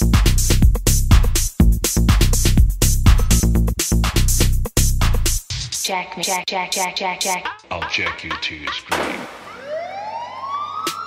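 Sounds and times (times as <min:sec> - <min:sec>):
sharp drum hit: 0:08.9 - 0:09.5
siren-like synth tone rising: 0:09.4 - 0:11.0.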